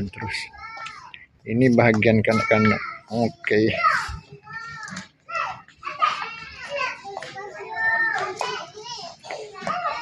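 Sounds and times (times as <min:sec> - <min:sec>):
young children talking: 0:00.0 - 0:01.3, 0:02.1 - 0:10.0.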